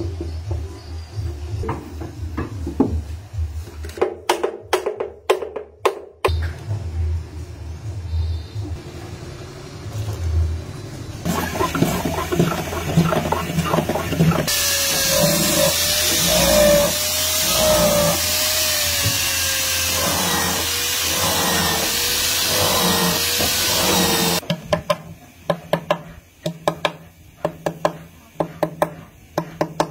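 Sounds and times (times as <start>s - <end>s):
electric drill boring wood: 11.3s - 24.4s.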